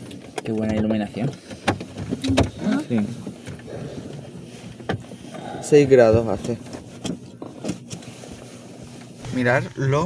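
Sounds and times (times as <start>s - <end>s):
person speaking in a car: 5.4s - 6.7s.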